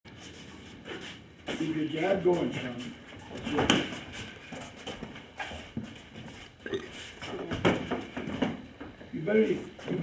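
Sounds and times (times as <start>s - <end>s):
feet shuffling on foam mat: 0.1s - 8.2s.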